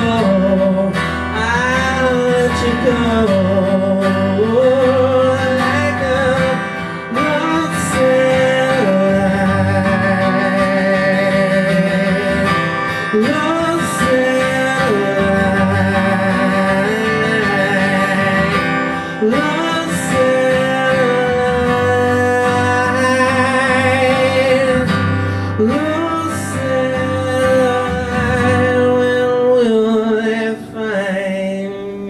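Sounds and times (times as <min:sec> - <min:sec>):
acoustic guitar strumming: 0:00.0 - 0:32.0
man singing: 0:00.0 - 0:32.0.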